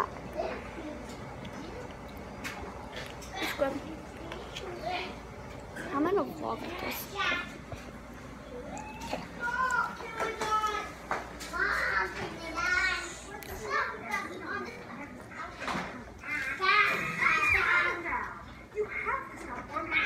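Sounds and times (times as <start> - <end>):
children talking and playing: 0.0 - 20.0.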